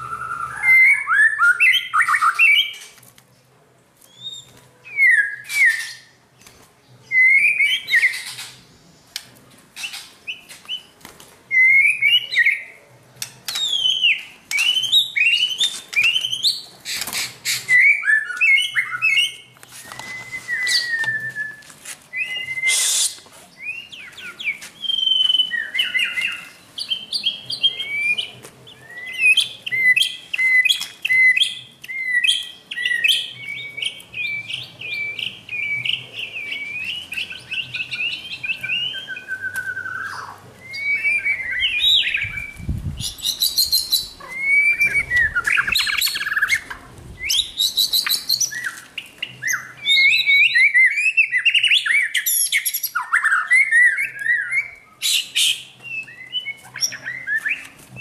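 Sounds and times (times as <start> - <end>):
birds singing whistled phrases: 0.0 - 3.0, 4.0 - 6.2, 7.0 - 9.2, 9.8 - 12.8, 13.5 - 58.0.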